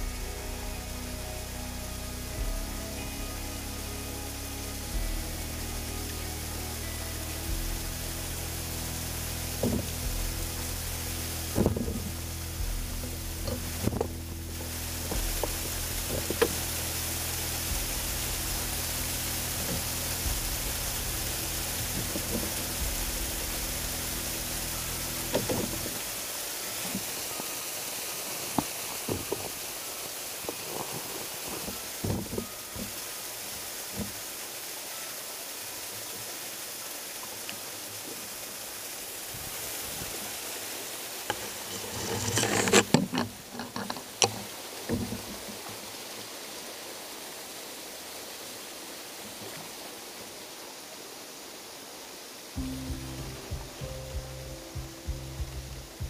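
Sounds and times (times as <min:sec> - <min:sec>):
music of long held notes: 0:00.0 - 0:42.0, 0:52.6 - 0:56.0
small waterfall rushing: 0:00.0 - 0:56.0.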